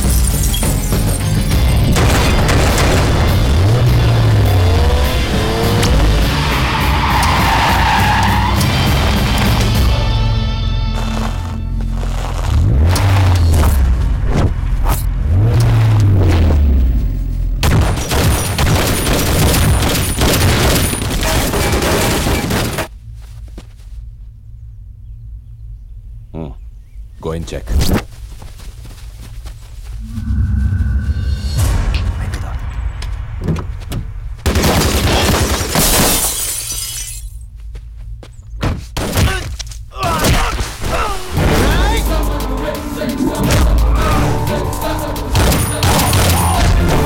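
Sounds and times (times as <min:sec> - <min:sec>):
loud shattering crash: 0:00.0 - 0:03.7
heavy vehicle engine rumble: 0:11.1 - 0:17.7
low rumble: 0:29.9 - 0:35.4
sharp impacts: 0:30.0 - 0:37.3.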